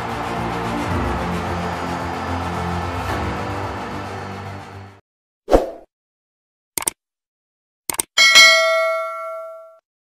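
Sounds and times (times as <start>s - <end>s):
bright chime ringing: 8.2s - 9.8s.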